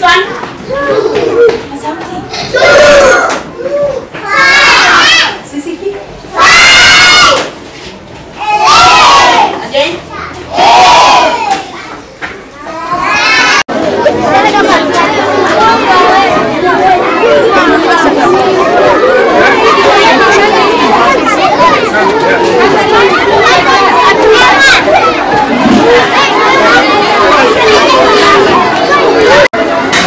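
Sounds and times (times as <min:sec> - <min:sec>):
crowd of children talking and shouting: 0:00.0 - 0:30.0.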